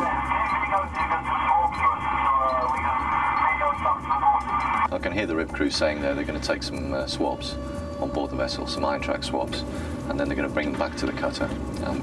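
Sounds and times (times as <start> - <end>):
man speaking over two-way radio: 0.0 - 4.8
steady low hum: 0.0 - 12.0.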